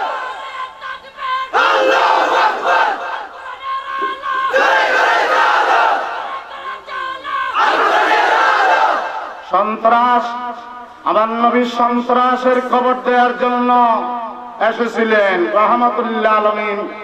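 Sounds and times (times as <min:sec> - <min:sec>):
crowd of men shouting in unison: 0:00.0 - 0:09.5.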